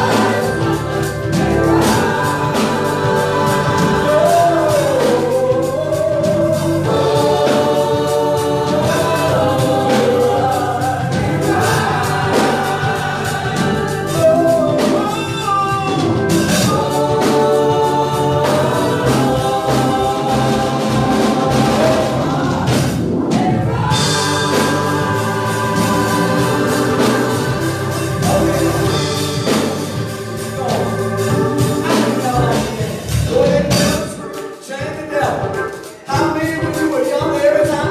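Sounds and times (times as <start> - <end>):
man singing into a microphone: 0.0 - 22.8, 31.8 - 37.9
gospel choir singing: 0.0 - 37.9
keyboard accompaniment: 0.0 - 37.9.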